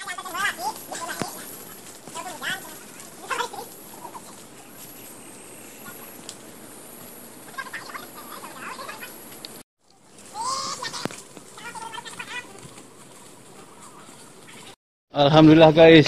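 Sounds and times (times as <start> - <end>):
birds clucking and chirping: 0.0 - 14.8
faint forest background: 0.0 - 16.0.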